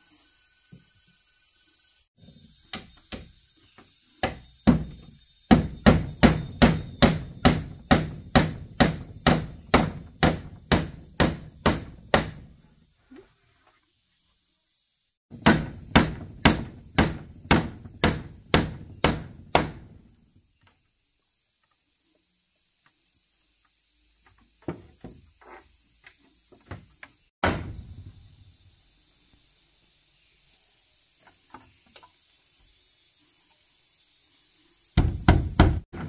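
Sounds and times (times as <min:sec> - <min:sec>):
hammer striking wood: 0:04.2 - 0:12.5, 0:15.3 - 0:20.0, 0:27.4 - 0:27.8, 0:35.0 - 0:36.0.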